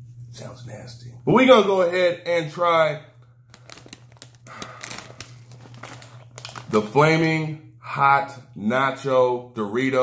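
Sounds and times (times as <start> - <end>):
plastic chip bag crackling: 3.5 - 7.0.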